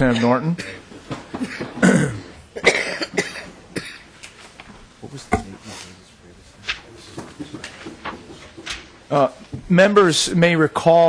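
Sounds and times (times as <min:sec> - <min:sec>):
person clearing throat: 0:01.4 - 0:04.1
person coughing: 0:01.4 - 0:04.1.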